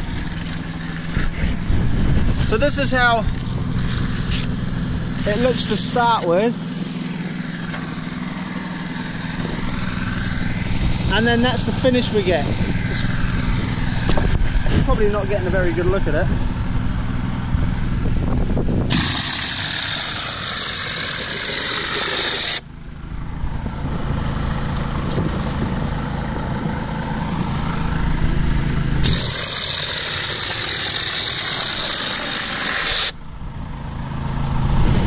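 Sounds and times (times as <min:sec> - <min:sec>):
generator and air compressor hum: 0:00.0 - 0:35.0.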